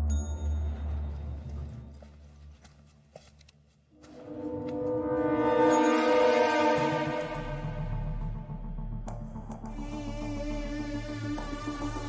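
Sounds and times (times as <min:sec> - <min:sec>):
low music drone: 0:04.0 - 0:12.0.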